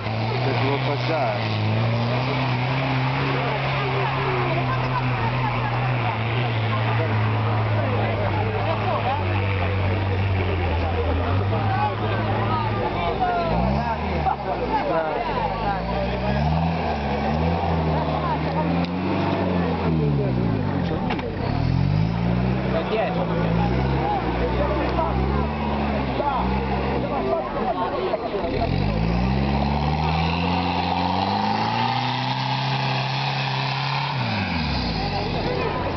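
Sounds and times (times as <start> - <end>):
off-road vehicle engine revving: 0.0 - 35.9.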